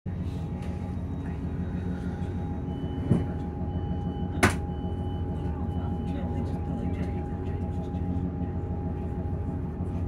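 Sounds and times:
diesel engine idling hum: 0:00.1 - 0:10.0.

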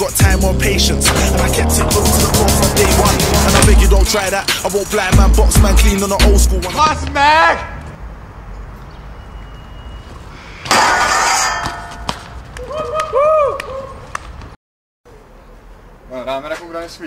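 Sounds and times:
bike landing on concrete: 0:10.6 - 0:12.4.

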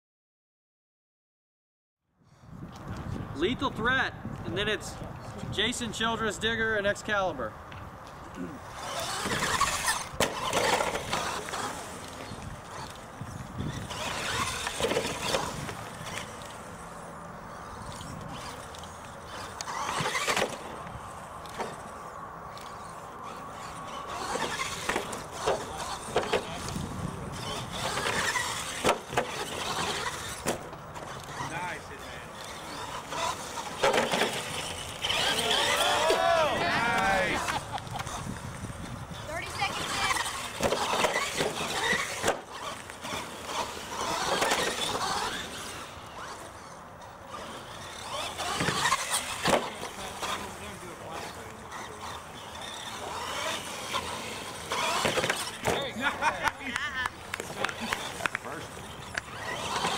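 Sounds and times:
toy car motors whining: 0:08.0 - 0:59.9
sharp knocks from landings: 0:54.7 - 0:56.0.

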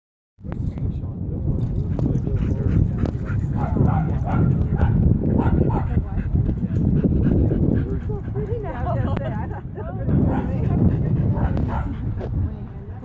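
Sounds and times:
wind on microphone: 0:00.4 - 0:13.0
dogs barking: 0:02.0 - 0:06.2, 0:10.2 - 0:12.1.

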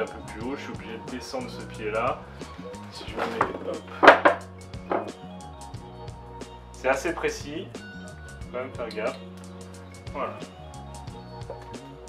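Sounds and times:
background music with steady beat: 0:00.0 - 0:12.0
tripod knocks: 0:03.2 - 0:05.2.

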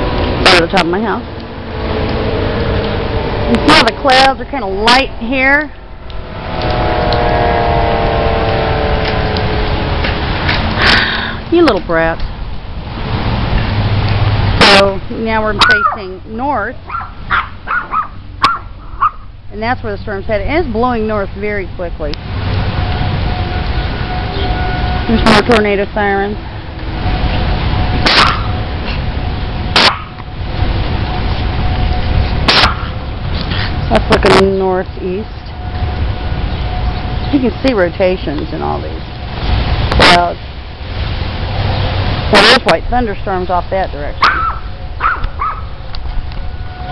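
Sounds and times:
distant warning siren: 0:00.0 - 0:46.9
wind buffeting microphone: 0:00.0 - 0:46.9.

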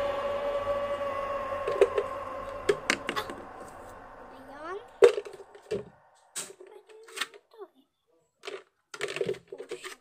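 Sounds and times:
steady held tone: 0:00.0 - 0:07.0.

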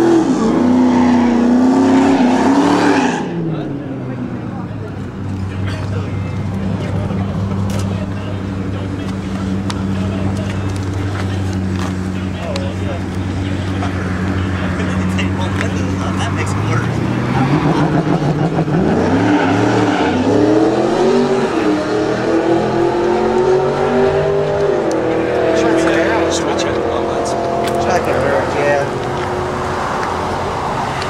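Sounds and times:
car engine accelerating: 0:00.0 - 0:31.0.

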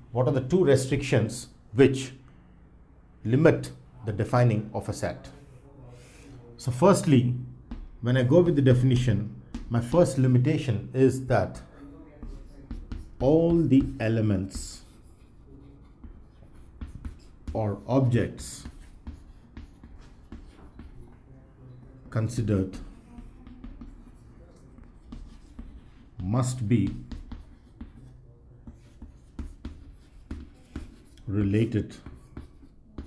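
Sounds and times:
chalk tap: 0:07.6 - 0:08.8, 0:09.5 - 0:10.2, 0:11.5 - 0:21.2, 0:21.8 - 0:33.0
chalk scratching on chalkboard: 0:09.5 - 0:33.0.

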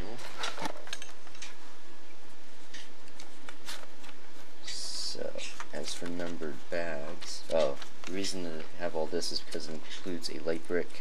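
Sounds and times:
handling clicks and clatter: 0:00.2 - 0:01.6
steady hiss: 0:02.4 - 0:11.0.

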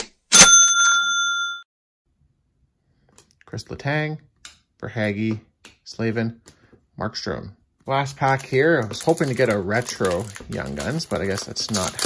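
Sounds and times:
bright bell ding: 0:00.3 - 0:01.7.

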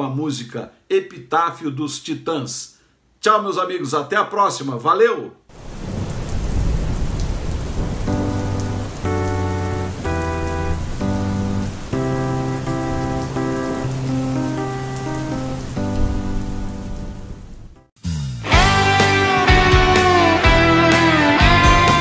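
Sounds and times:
rain falling: 0:05.5 - 0:17.7, 0:18.5 - 0:22.0
keyboard sustained chords: 0:08.1 - 0:17.9, 0:18.5 - 0:22.0.

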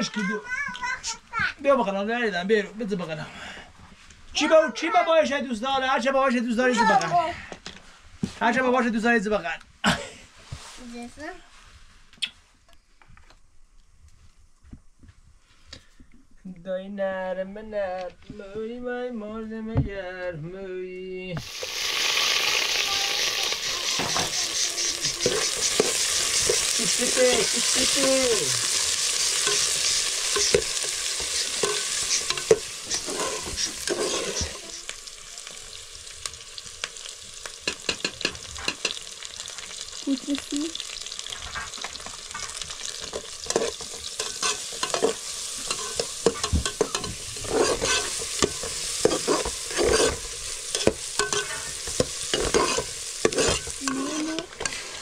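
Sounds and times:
onions sizzling in a pot: 0:21.4 - 0:55.0.

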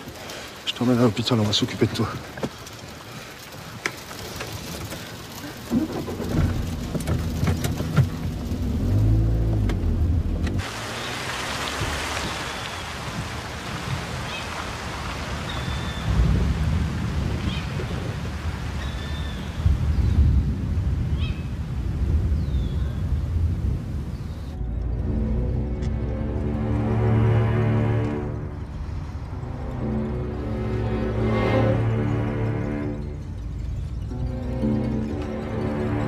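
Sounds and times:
steady rain: 0:00.0 - 0:36.0
car engine rumble: 0:04.2 - 0:14.1, 0:19.7 - 0:36.0
car moving off: 0:05.4 - 0:12.8
rolling thunder: 0:16.0 - 0:18.6, 0:19.4 - 0:24.4.

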